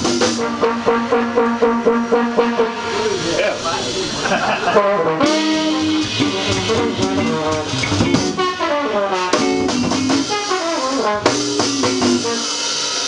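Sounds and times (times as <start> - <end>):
trombone solo: 0.0 - 3.2, 4.6 - 13.0
upright bass: 0.0 - 12.4
drum kit: 0.0 - 13.0
electric guitar: 0.0 - 13.0.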